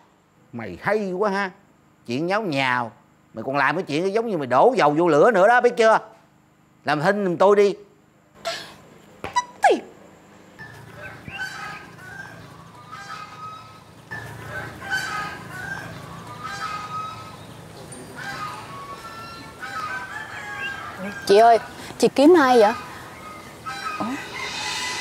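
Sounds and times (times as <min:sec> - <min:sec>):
chickens clucking: 0:08.6 - 0:25.0
rooster crowing: 0:10.6 - 0:25.0.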